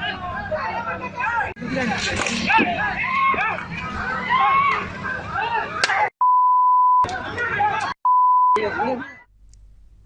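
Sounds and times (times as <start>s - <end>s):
high censor beep: 6.2s - 7.0s, 8.0s - 8.6s.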